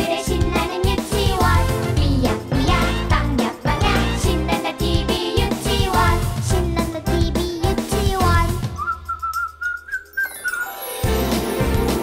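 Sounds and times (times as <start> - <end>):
cheerful music: 0.0 - 12.0
whistled note: 8.8 - 11.2.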